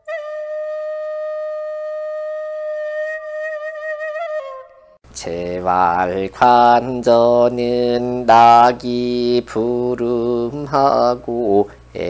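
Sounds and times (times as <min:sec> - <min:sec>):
flute holding long note: 0:00.0 - 0:05.0.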